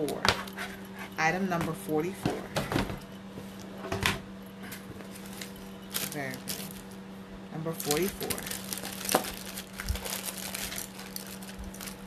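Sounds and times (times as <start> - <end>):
cardboard crinkling: 7.8 - 12.0.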